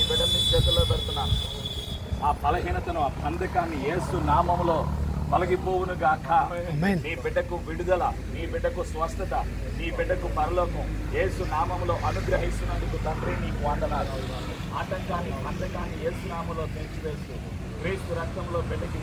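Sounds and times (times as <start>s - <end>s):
quiet voices talking: 2.2s - 19.0s.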